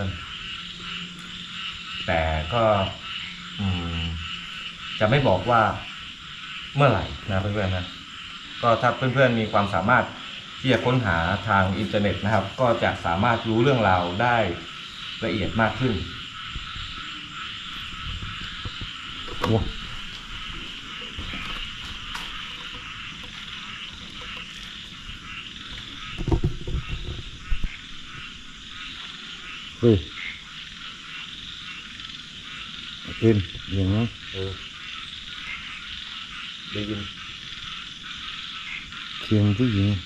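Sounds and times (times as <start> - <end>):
frogs croaking: 0.0 - 40.0.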